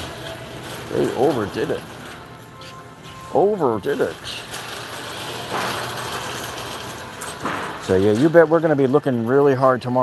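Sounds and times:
shopping cart rolling on concrete: 0.0s - 10.0s.

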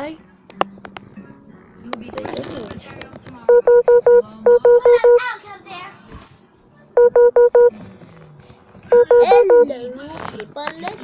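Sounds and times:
quick electronic beeps: 3.5s - 5.2s, 7.0s - 7.7s, 8.9s - 9.7s.

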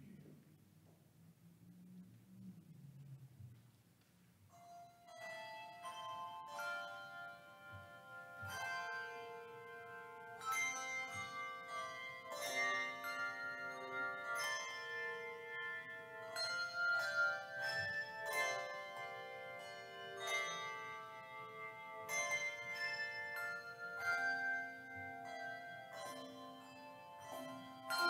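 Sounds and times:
handbell choir playing: 4.6s - 28.0s.

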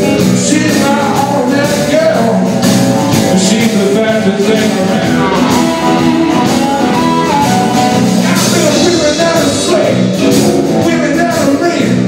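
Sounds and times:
bass guitar: 0.0s - 12.0s
drums: 0.0s - 12.0s
electric guitars: 0.0s - 12.0s
amplified harmonica: 2.5s - 9.4s.

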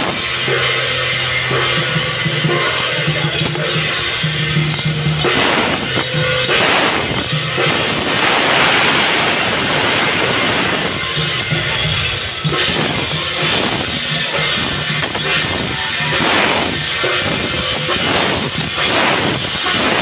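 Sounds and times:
cymbal crashes: 0.0s - 20.0s
drums beating: 0.0s - 20.0s.

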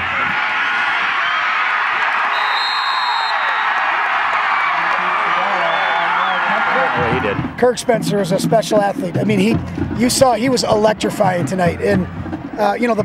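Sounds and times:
stadium crowd cheering and shouting: 0.0s - 13.0s.

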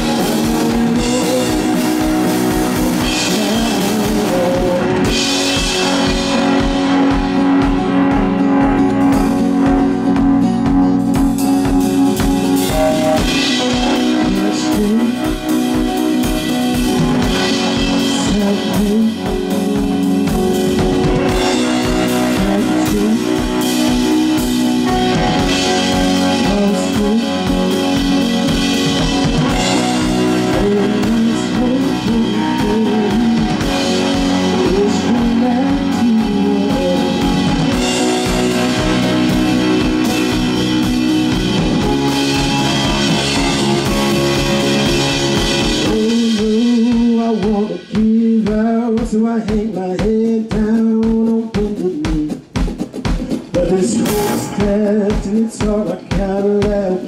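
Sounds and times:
bass guitar: 0.0s - 57.0s
drum kit beat: 0.0s - 57.0s
guitars: 0.0s - 57.0s
keyboard: 0.0s - 57.0s.

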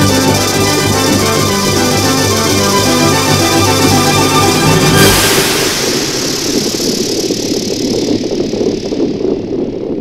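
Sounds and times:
synthesizer noise burst: 0.0s - 8.7s.

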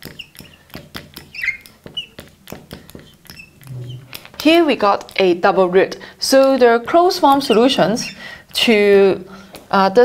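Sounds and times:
marker squeaks: 0.0s - 5.4s, 6.3s - 8.4s
marker writing on glass: 0.0s - 5.6s, 6.3s - 8.8s.

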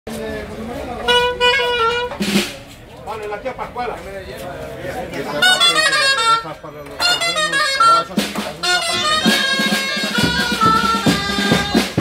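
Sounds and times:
crowd chatter: 0.1s - 12.0s
wind instrument playing held note: 1.0s - 2.2s, 5.4s - 12.0s.

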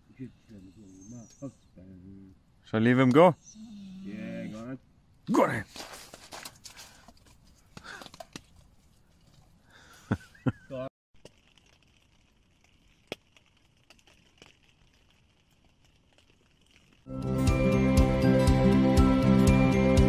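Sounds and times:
wood fire hissing and crackling: 0.0s - 18.0s.

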